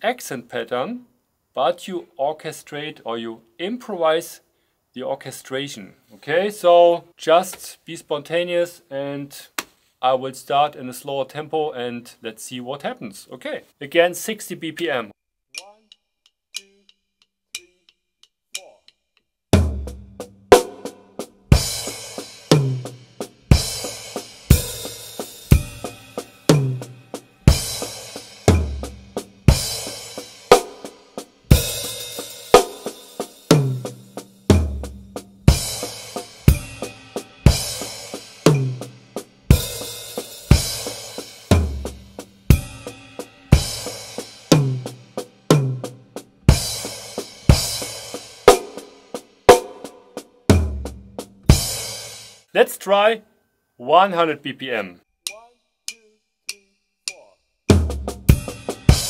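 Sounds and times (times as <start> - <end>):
acoustic drum kit playing: 19.6 - 52.5, 57.7 - 59.0
cymbal strokes ringing: 35.6 - 38.4.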